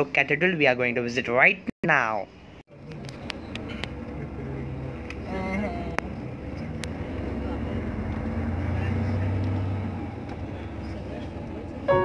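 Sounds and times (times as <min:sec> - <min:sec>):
vehicle engine and road noise: 0:02.4 - 0:12.0.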